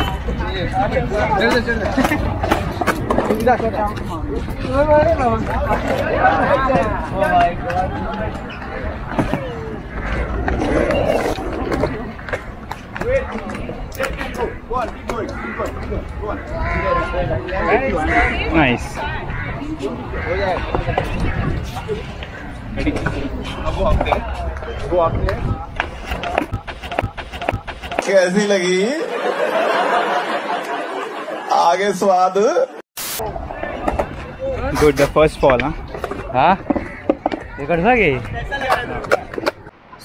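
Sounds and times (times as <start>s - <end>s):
skateboard wheels rolling on concrete: 0.1s - 28.2s, 33.2s - 40.0s
skateboard clicks and knocks: 1.4s - 4.1s, 35.4s - 37.6s, 38.2s - 39.7s.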